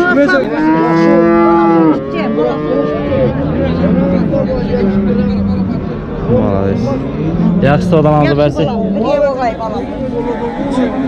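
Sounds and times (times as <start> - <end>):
cow mooing: 0.2 - 9.4.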